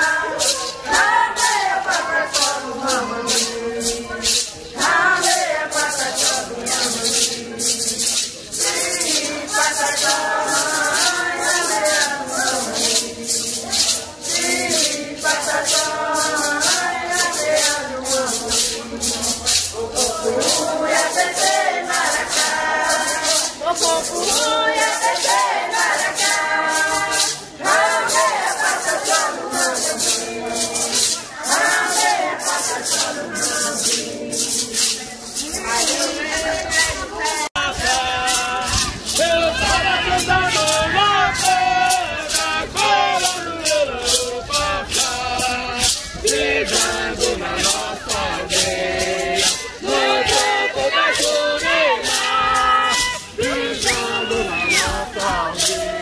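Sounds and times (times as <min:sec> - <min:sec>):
maracas shaking: 0:00.0 - 0:56.0
voices singing a chant: 0:00.0 - 0:56.0.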